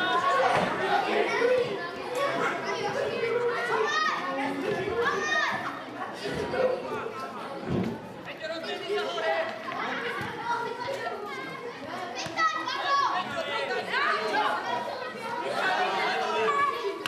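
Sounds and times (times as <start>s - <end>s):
children shouting: 0.0s - 7.0s, 8.9s - 17.0s
crowd chattering and calling out: 0.0s - 17.0s.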